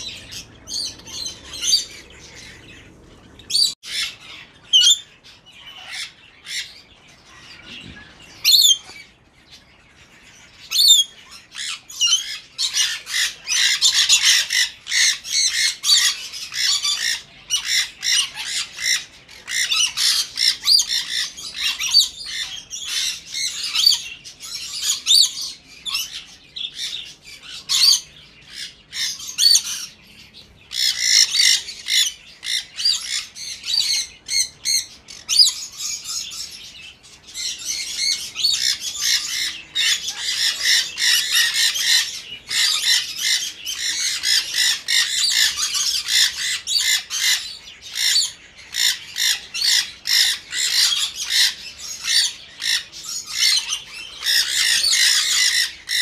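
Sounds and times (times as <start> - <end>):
parrots squawking and chirping: 0.0 - 56.0.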